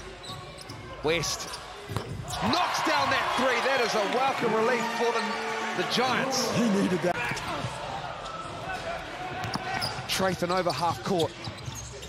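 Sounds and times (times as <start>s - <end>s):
murmur of crowd: 0.0s - 12.0s.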